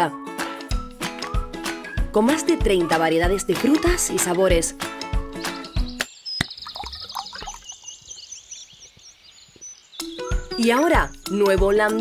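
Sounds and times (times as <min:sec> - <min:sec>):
background music: 0:00.0 - 0:06.1, 0:10.0 - 0:12.0
birds chirping: 0:01.5 - 0:12.0.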